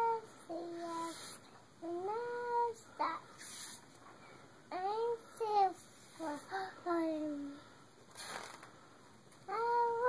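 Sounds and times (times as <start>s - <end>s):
girl reading aloud in sing-song: 0.0s - 3.7s, 4.7s - 7.8s, 9.4s - 10.0s.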